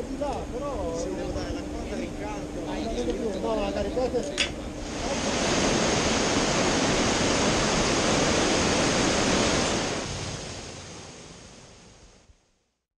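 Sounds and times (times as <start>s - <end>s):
river rushing over rocks: 4.8s - 11.2s.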